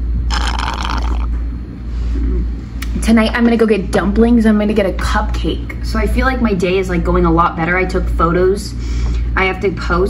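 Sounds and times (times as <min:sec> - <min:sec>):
low hum: 0:00.0 - 0:10.0
slurping sip from can: 0:00.3 - 0:01.3.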